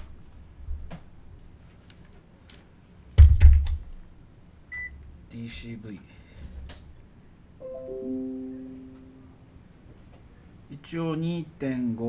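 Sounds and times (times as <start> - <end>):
piano-like chime: 7.6 - 9.6.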